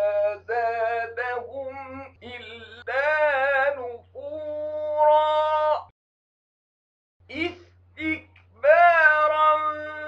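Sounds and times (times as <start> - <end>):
man chanting: 0.0 - 5.9, 7.3 - 10.0.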